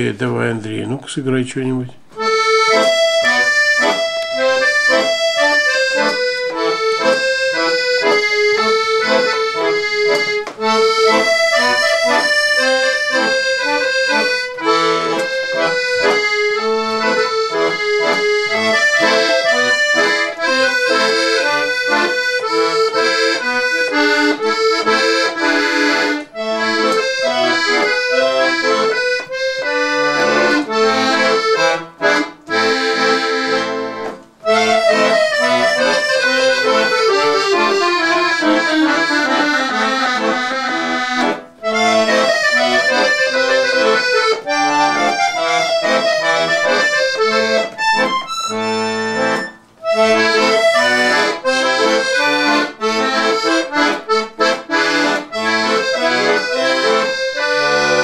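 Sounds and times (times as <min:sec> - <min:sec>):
accordion melody: 0:00.0 - 0:58.0.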